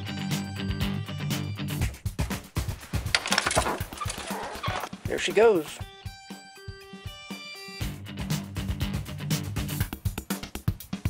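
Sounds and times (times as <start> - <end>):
metallic rattle: 2.9 - 5.0.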